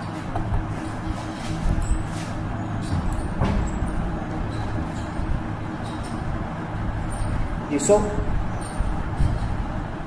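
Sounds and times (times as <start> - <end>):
vehicle traffic rumble: 0.0 - 10.0.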